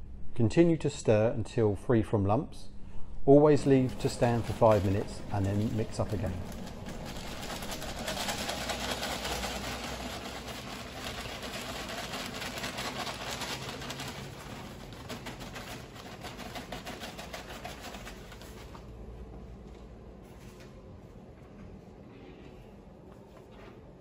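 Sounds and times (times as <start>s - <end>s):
bag crackling: 3.6s - 18.6s
powder pouring into water: 3.7s - 18.4s.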